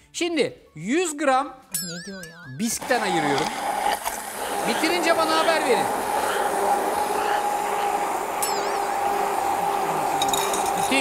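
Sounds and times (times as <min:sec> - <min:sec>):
immersion blender motor hum: 0:02.9 - 0:11.0.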